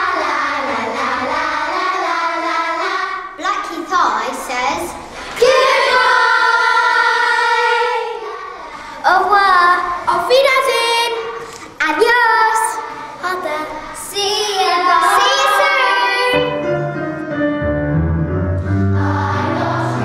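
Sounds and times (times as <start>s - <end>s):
girls singing together: 0.0s - 3.4s, 5.0s - 16.6s, 18.7s - 20.0s.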